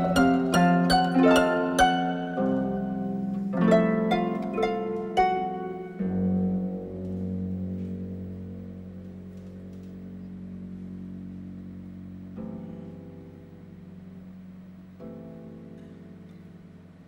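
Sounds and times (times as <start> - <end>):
harp chords plucked: 0.0 - 17.0.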